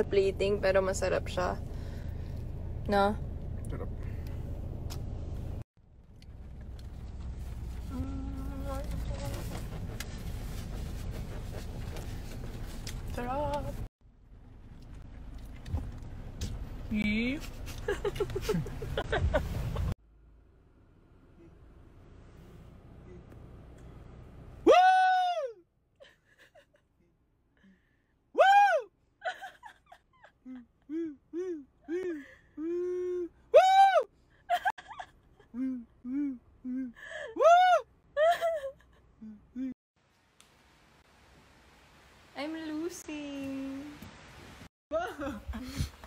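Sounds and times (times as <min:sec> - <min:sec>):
car cabin rumble: 0:02.9 - 0:20.0
short hummed voice: 0:07.8 - 0:09.6, 0:35.6 - 0:37.0.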